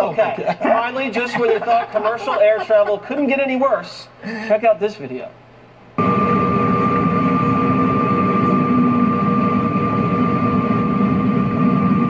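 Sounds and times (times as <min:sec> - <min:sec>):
thin constant hum: 0:00.0 - 0:06.0
jet engine drone: 0:06.0 - 0:12.0.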